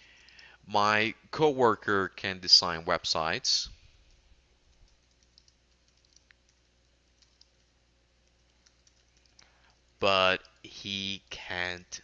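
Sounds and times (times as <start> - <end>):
faint keyboard typing: 0.0 - 0.5, 4.0 - 11.4.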